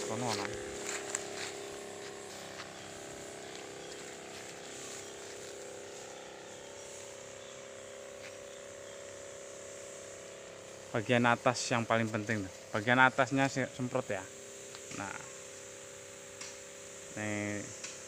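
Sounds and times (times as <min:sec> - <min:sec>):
nozzle spraying hiss: 0:00.0 - 0:18.0
sprayer pump motor humming: 0:00.0 - 0:18.0.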